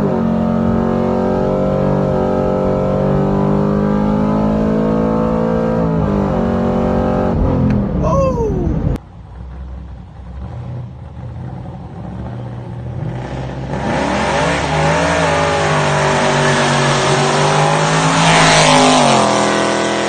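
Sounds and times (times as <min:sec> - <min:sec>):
car engine accelerating hard: 0:00.0 - 0:20.0.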